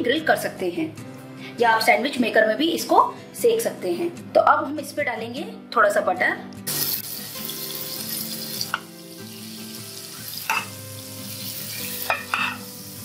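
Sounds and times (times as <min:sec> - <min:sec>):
butter sizzling in a pan: 0:06.7 - 0:13.0.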